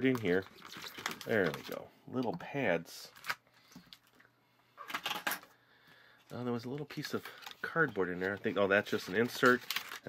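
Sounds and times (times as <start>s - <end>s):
plastic packaging crinkling: 0.0s - 1.8s, 3.1s - 4.3s, 6.6s - 10.0s
plastic packaging rustle: 0.0s - 1.9s, 3.0s - 4.2s, 6.3s - 10.0s.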